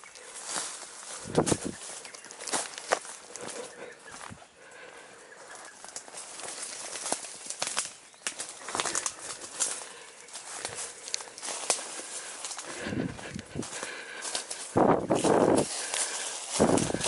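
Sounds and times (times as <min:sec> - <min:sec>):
branches rustling: 0:00.0 - 0:17.0
footsteps crunching on dry leaves: 0:00.0 - 0:17.0.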